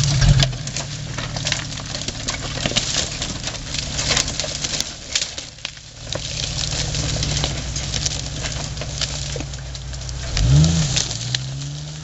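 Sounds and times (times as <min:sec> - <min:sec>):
engine running at low revs: 0:00.0 - 0:12.0.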